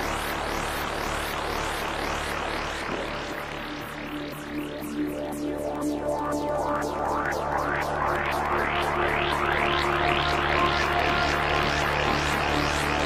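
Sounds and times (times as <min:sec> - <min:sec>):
rising synthesizer sweeps: 0:05.2 - 0:13.0.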